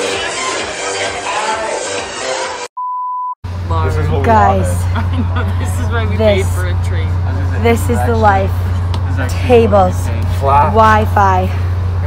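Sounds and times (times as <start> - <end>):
train interior hum: 3.5 - 12.0
voices: 3.6 - 12.0.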